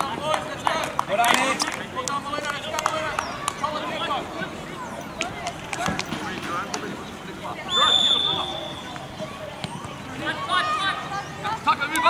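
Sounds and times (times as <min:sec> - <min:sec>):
referee's whistle blast: 0:07.7 - 0:08.9.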